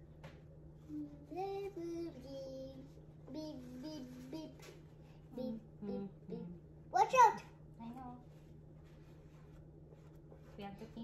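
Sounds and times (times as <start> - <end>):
girl singing wordless tune: 0.8 - 7.1.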